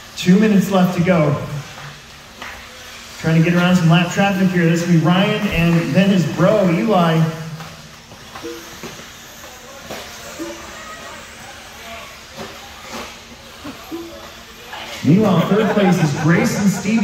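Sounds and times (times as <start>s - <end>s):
radio-controlled cars whining: 0.0s - 17.0s.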